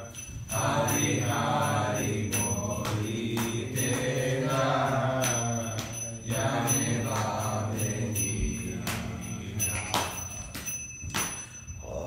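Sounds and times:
person chanting verse: 0:00.0 - 0:10.7
hand cymbals ringing: 0:00.0 - 0:12.0.

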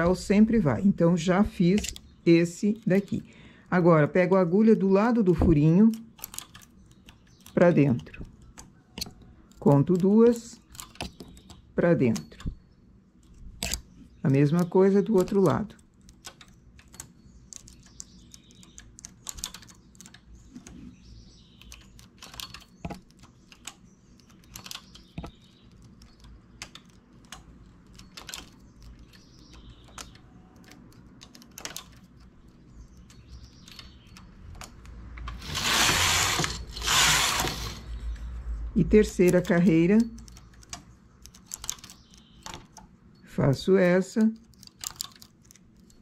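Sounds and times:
knitting carriage sweeping: 0:35.2 - 0:38.0.

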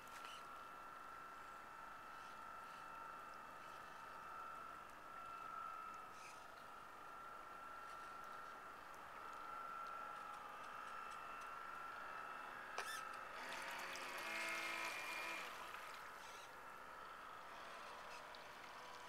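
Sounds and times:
model boat motor whining: 0:02.1 - 0:19.0.

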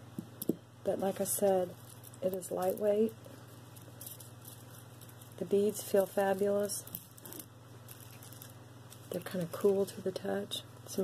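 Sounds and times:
steady low hum: 0:00.0 - 0:11.0
beaded necklace handled: 0:00.4 - 0:10.5.

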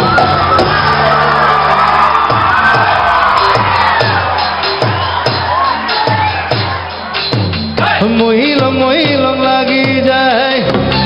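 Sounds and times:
crowd shouts and whoops: 0:00.0 - 0:08.2
drum hits: 0:00.0 - 0:10.1
live band music: 0:00.0 - 0:11.0.

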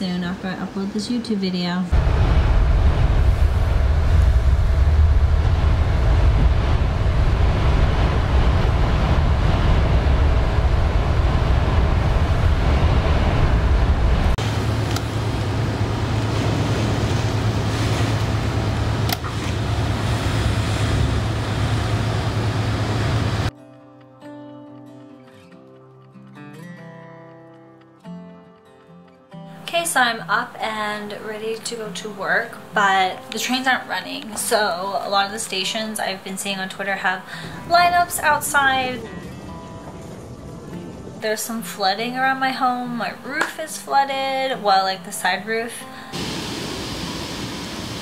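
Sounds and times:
wind and rain rushing: 0:01.9 - 0:23.5, 0:36.8 - 0:42.2, 0:46.1 - 0:48.0
quiet guitar music: 0:23.5 - 0:46.2.

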